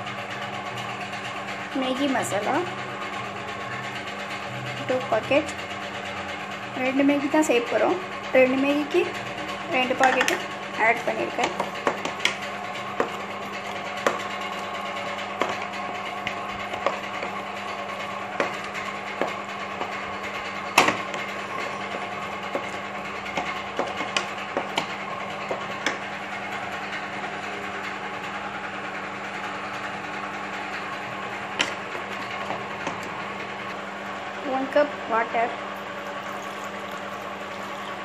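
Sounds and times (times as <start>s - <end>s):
sauce boiling in a wok: 35.6s - 38.0s.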